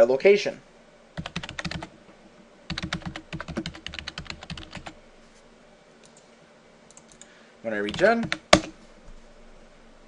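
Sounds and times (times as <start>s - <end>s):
fast typing on keyboard: 1.2s - 1.9s, 2.7s - 5.0s, 7.8s - 8.7s.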